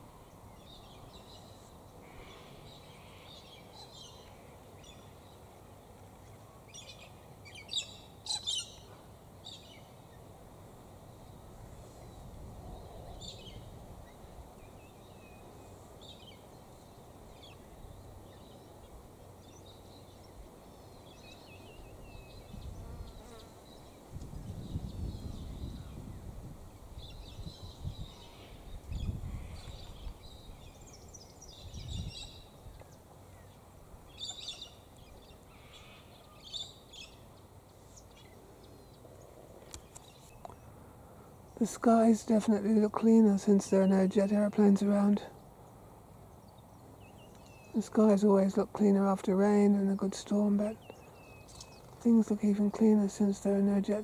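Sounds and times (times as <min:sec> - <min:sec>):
birds chirping and calling: 0:06.7 - 0:09.9, 0:34.1 - 0:39.0.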